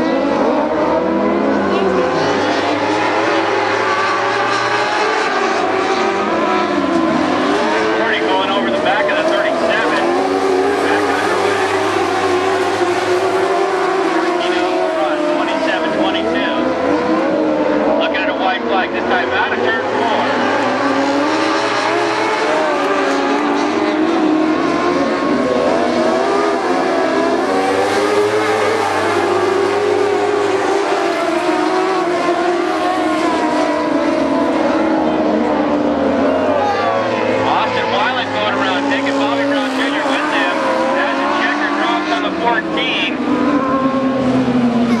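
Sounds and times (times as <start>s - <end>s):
racing car engines: 0.0s - 45.0s.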